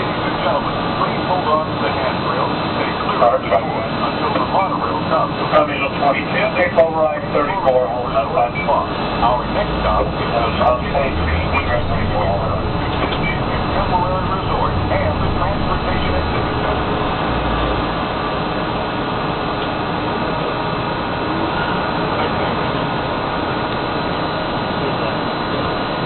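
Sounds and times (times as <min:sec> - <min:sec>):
monorail rumble and hiss: 0:00.0 - 0:26.0.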